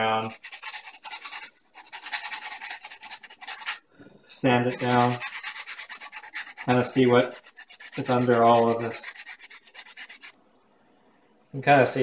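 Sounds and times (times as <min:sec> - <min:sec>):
sandpaper rasping on wood: 0:00.2 - 0:03.8, 0:04.7 - 0:10.4.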